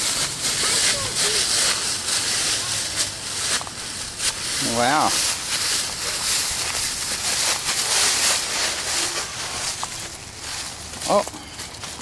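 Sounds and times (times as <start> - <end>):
footsteps through dry leaves: 0.0 - 12.0.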